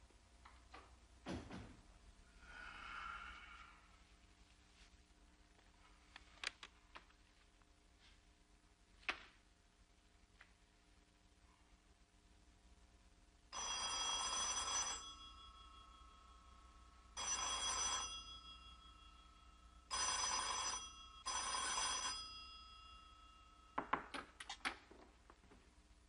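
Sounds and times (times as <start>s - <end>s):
telephone bell ringing: 13.5s - 23.8s.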